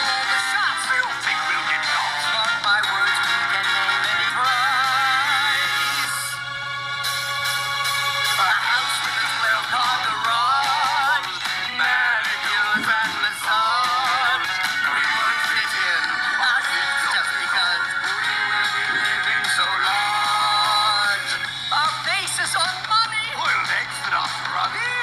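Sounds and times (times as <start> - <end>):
high voice singing with vibrato: 0.0 - 6.4, 8.4 - 22.4
musical backing: 0.0 - 25.0.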